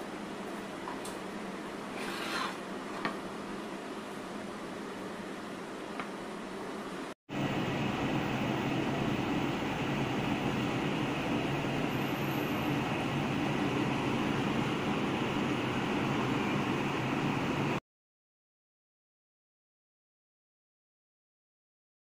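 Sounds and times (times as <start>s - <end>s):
machine hum with rushing noise: 6.8s - 17.8s.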